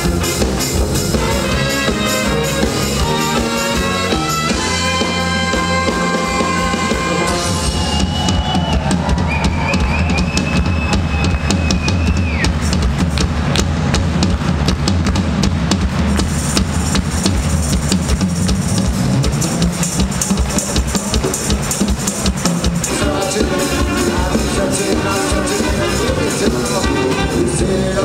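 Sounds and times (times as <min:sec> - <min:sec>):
drums and cymbals: 0:00.0 - 0:28.0
live band playing: 0:00.0 - 0:28.0.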